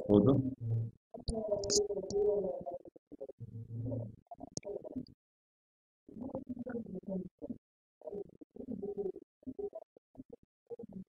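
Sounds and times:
muffled voice: 0.0 - 0.5, 1.3 - 2.8.

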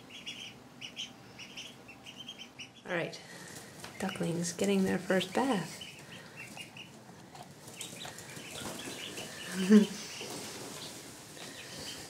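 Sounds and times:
ducklings peeping: 0.0 - 12.0.

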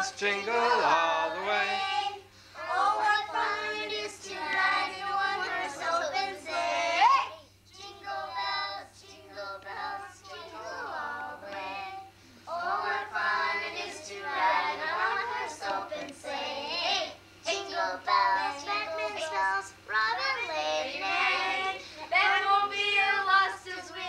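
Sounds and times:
child singing: 0.0 - 24.0
low steady hum: 0.0 - 24.0
woman singing: 17.5 - 24.0.

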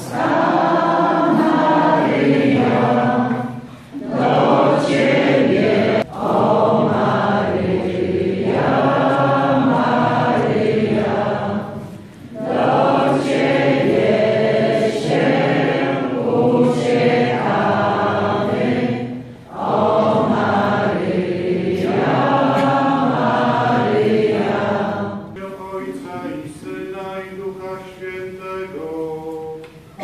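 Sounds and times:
group singing a hymn: 0.0 - 30.0.

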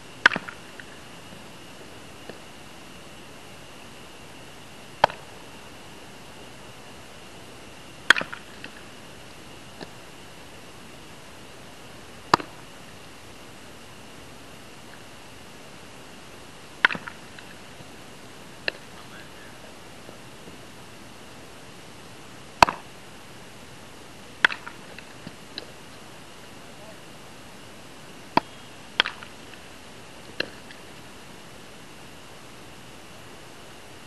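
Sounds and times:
faint hiss: 0.0 - 34.0
baseball sharp knocks: 0.2 - 0.6, 8.1 - 8.8, 12.3 - 12.6, 16.8 - 17.5, 18.6 - 19.0, 22.6 - 22.9, 24.4 - 25.7.

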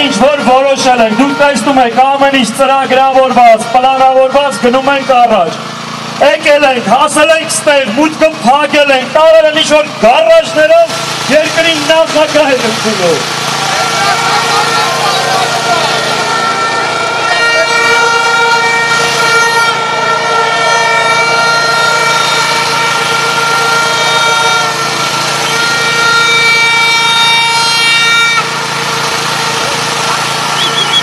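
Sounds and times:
loud steady horn blast: 0.0 - 31.0
protest crowd clamour: 0.0 - 31.0.

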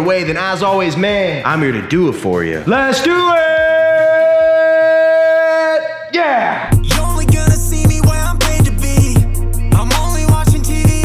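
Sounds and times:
man shouting: 2.7 - 6.8.

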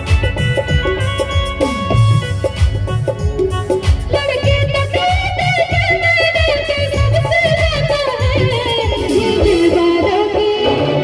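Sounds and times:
hand drum beat: 0.0 - 10.0
keyboard melody: 0.0 - 11.0.

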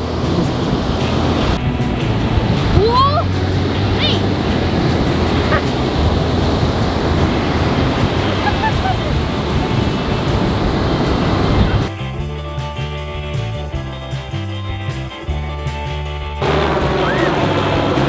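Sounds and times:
ocean surf breaking: 0.0 - 11.9, 16.4 - 18.0
wind buffeting microphone: 0.0 - 18.0.

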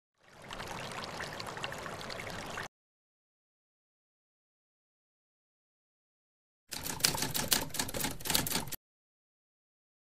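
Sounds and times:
typewriter keys clattering: 6.7 - 8.8.

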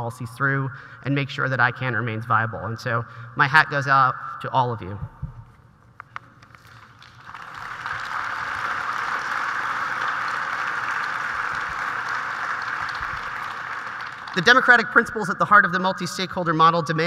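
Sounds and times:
large audience applauding: 6.6 - 14.8.

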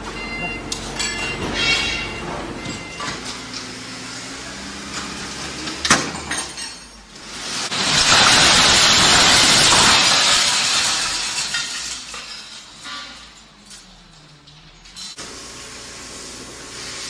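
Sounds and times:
scrap metal clattering and crashing: 0.2 - 15.3.

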